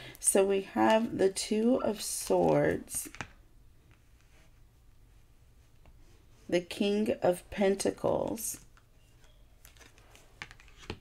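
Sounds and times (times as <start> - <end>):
cards clicking and tapping: 9.7 - 11.0.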